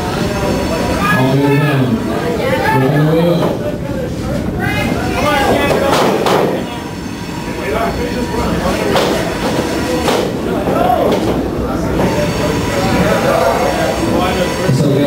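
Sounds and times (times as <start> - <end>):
voices shouting: 0.0 - 14.8
crowd and room noise: 0.0 - 15.0.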